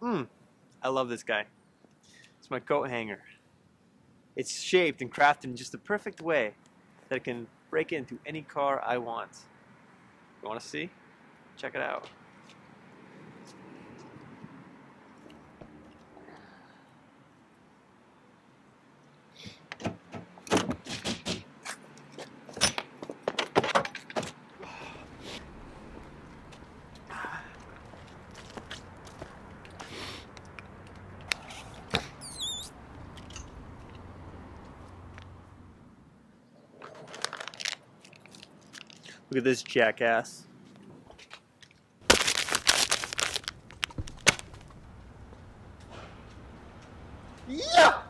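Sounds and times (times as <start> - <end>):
foil wrapper crinkling: 37.0 - 39.1, 42.0 - 44.8.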